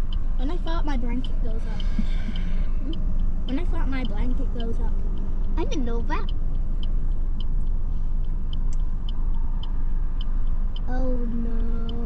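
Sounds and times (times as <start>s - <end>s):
car idling rumble: 0.0s - 12.0s
faint regular ticking: 0.0s - 12.0s.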